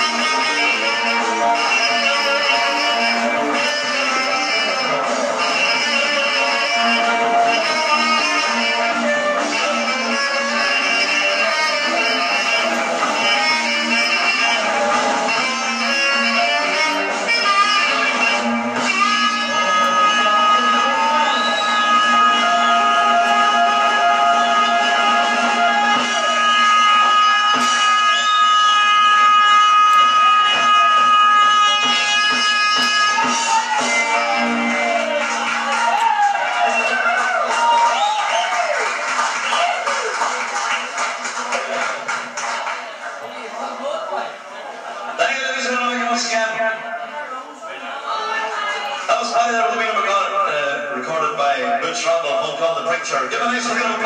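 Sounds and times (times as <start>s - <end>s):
live band music: 0.0s - 43.4s.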